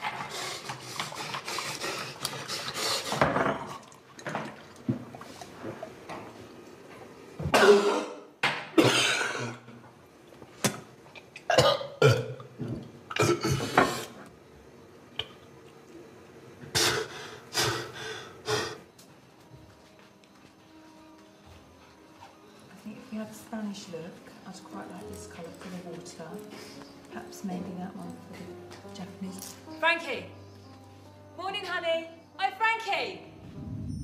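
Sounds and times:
man retching and gagging: 7.5s - 9.6s.

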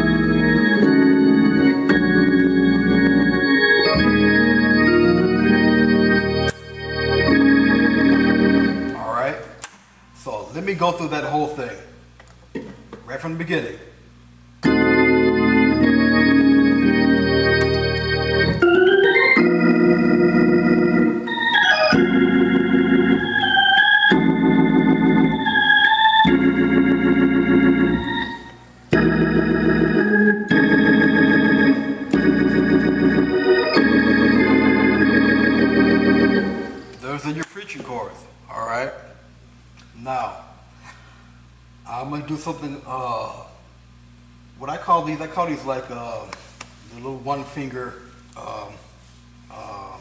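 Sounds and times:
organ playing gospel chords: 0.0s - 9.6s, 14.6s - 38.2s.

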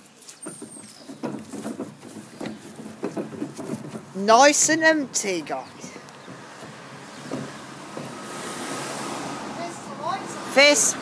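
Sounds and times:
vehicle passing: 4.5s - 11.0s.

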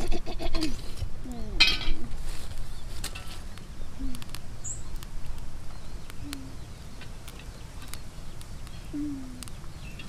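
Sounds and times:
wood fire crackling: 1.9s - 10.0s
bird chirp: 2.6s - 5.0s, 5.6s - 10.0s
low falling coo-like call: 4.0s - 4.3s, 6.2s - 6.7s, 8.9s - 9.5s.

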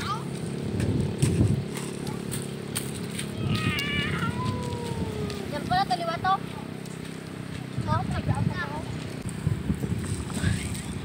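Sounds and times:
child squealing: 3.4s - 5.4s.

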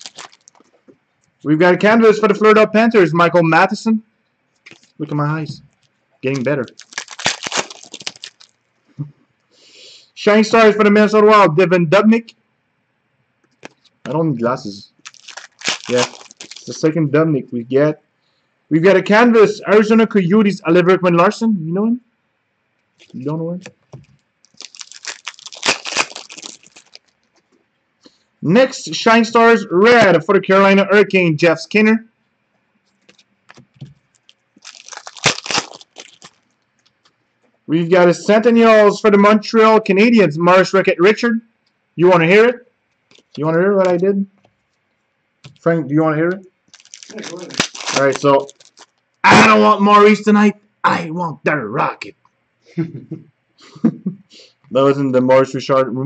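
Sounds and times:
wrapping crinkling and rustling: 0.0s - 0.8s, 4.6s - 8.7s, 15.0s - 16.8s, 23.0s - 27.6s, 32.9s - 37.2s, 43.1s - 43.4s, 46.7s - 49.2s.

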